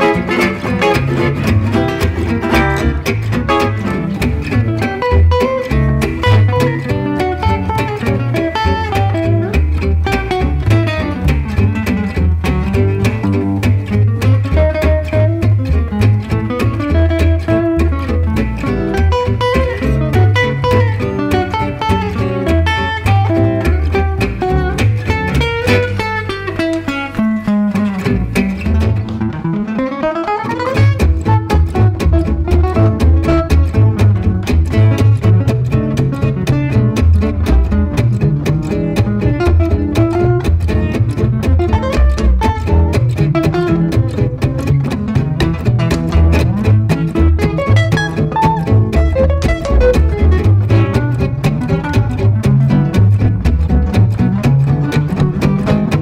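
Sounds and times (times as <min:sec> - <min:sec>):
acoustic guitars playing jazz: 0:00.0 - 0:56.0
double bass: 0:00.0 - 0:56.0.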